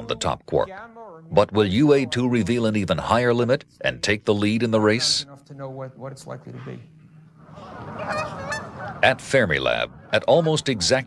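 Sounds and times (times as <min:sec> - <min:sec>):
outdoor background noise: 0:00.0 - 0:11.0
geese honking: 0:07.4 - 0:10.6.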